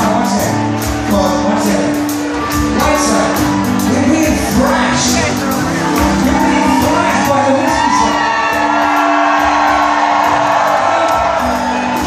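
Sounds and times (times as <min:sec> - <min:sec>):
rock band playing live: 0:00.0 - 0:12.0
steady drum beat: 0:00.0 - 0:12.0.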